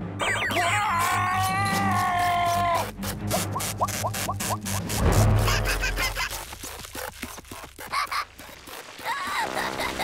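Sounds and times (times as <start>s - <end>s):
background music: 0.0s - 6.2s
cartoon character falling cry: 0.4s - 2.8s.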